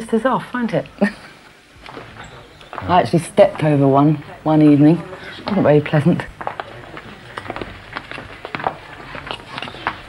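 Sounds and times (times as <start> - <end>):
footsteps on stone steps: 1.8 - 10.0.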